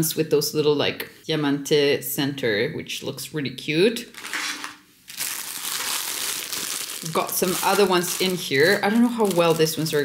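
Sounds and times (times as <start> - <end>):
cellophane packaging crinkling: 4.1 - 10.0.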